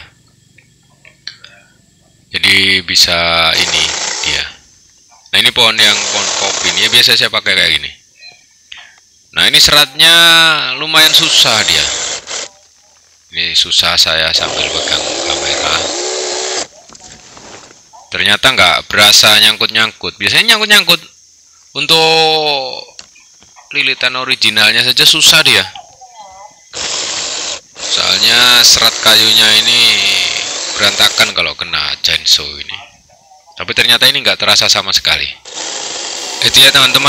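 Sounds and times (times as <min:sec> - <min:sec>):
mini chainsaw cutting branch: 0:03.6 - 0:04.4, 0:05.9 - 0:07.0, 0:11.1 - 0:12.5, 0:14.4 - 0:16.7, 0:26.7 - 0:31.4, 0:35.4 - 0:37.0.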